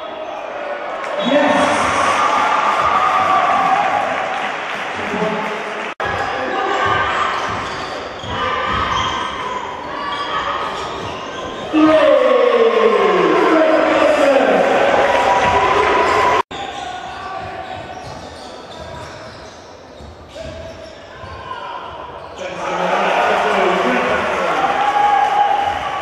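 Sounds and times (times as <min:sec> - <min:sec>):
basketball bouncing on wooden court: 0:06.8 - 0:09.4.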